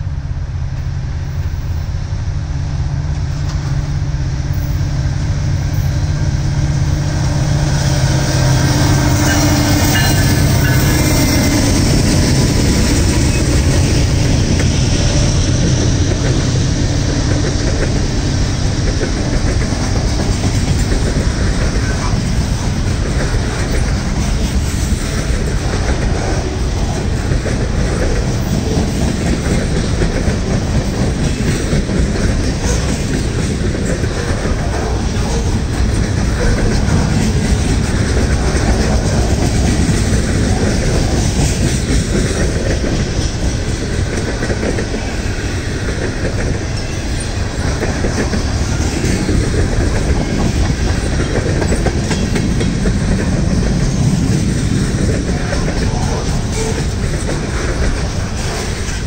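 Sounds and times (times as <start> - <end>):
freight train wheels rumbling: 0.0 - 59.0.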